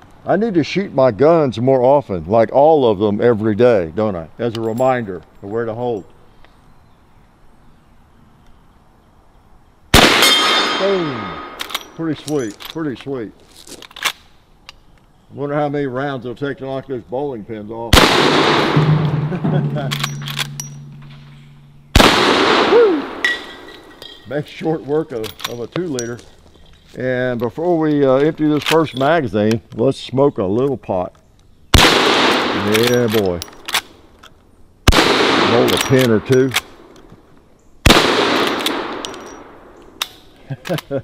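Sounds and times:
rifle shots echoing: 0:09.9 - 0:12.0, 0:17.9 - 0:24.0, 0:31.7 - 0:33.0, 0:34.8 - 0:37.0, 0:37.8 - 0:39.8
rifle lever metallic clacks: 0:11.4 - 0:13.1, 0:19.8 - 0:22.2, 0:25.2 - 0:26.1, 0:35.7 - 0:37.1, 0:38.3 - 0:40.9.

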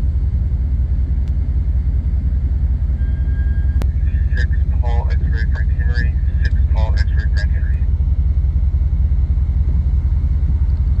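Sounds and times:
low rumble with fast pulse: 0:00.0 - 0:11.0.

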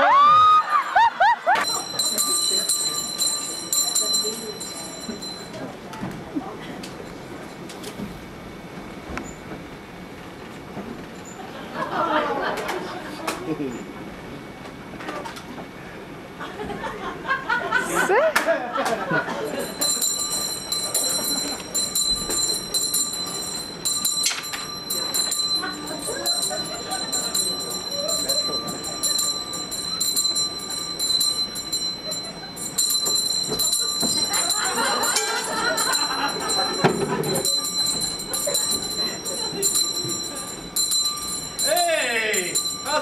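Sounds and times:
hand bell ringing: 0:01.6 - 0:05.8, 0:19.4 - 0:43.0.

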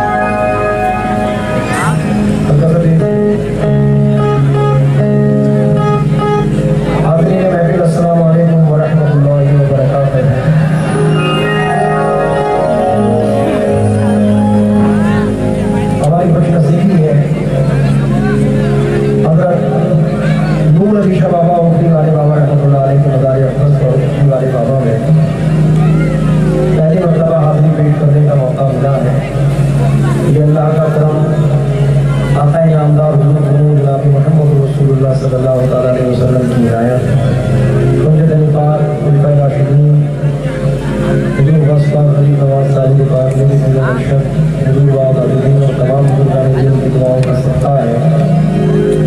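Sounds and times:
sustained keyboard drone: 0:00.0 - 0:49.0.

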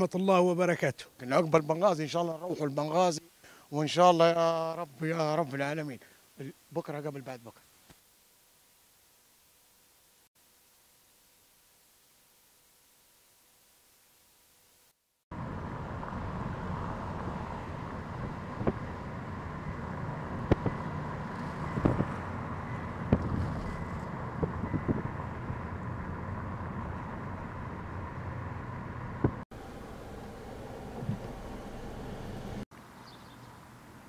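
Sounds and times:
wind on microphone: 0:16.7 - 0:28.1.

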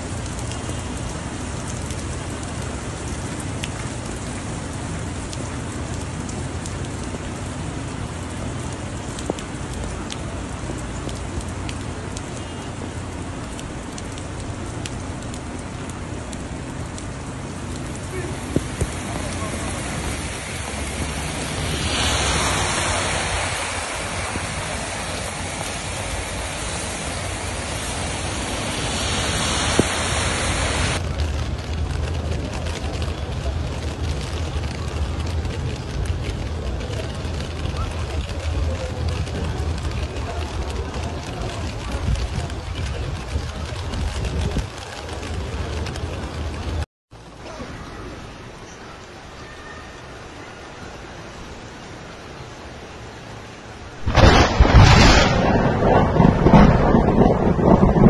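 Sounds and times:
heavy rain on pavement: 0:00.0 - 0:58.0.

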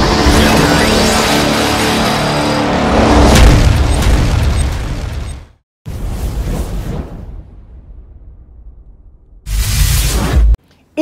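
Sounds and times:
cinematic intro music: 0:00.0 - 0:10.6
deep boom: 0:03.2 - 0:09.5.

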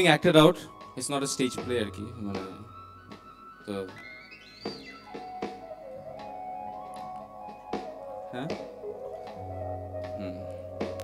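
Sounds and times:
synthesized electronic tones: 0:00.6 - 0:11.0.

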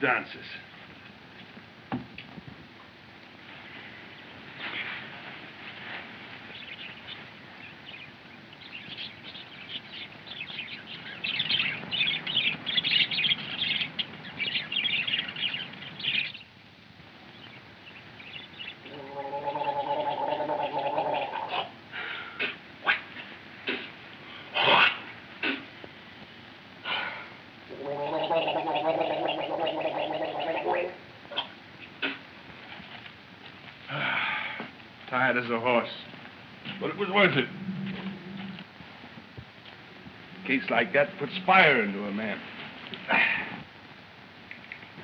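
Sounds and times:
bird chirping: 0:06.4 - 0:16.6, 0:17.2 - 0:21.7, 0:27.7 - 0:32.2
man gargling: 0:18.9 - 0:21.7, 0:27.7 - 0:31.0.

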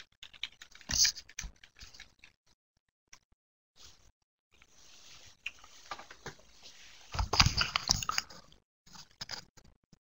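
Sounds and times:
keyboard typing: 0:00.0 - 0:02.4.

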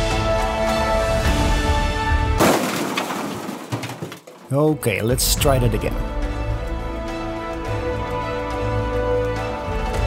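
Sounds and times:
background music with held notes: 0:00.0 - 0:02.4, 0:04.5 - 0:10.0.

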